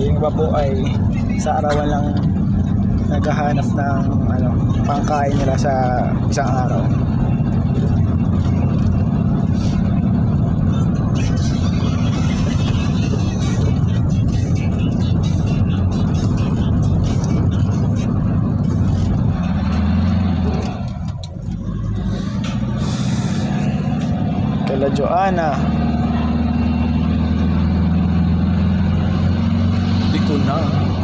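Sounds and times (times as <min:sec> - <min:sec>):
car engine and road noise: 0:00.0 - 0:31.0.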